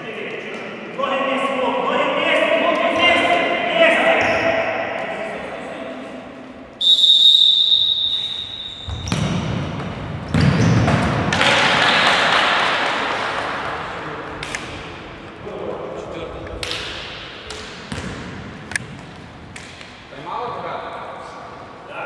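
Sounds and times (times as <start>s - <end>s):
voices in hall: 0.0s - 8.8s, 11.3s - 22.0s
referee's whistle: 6.8s - 9.1s
ball being struck: 16.6s - 20.0s.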